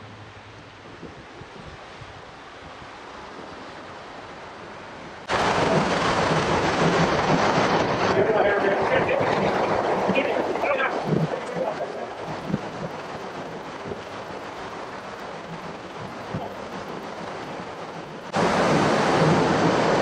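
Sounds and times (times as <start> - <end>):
water rushing against boat hull: 0.0 - 20.0.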